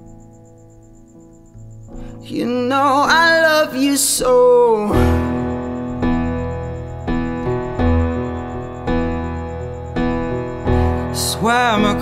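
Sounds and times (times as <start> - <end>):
piano chords: 0.0 - 12.0
person singing: 2.2 - 5.6, 10.7 - 12.0
rapidly pulsing high tone: 5.0 - 12.0.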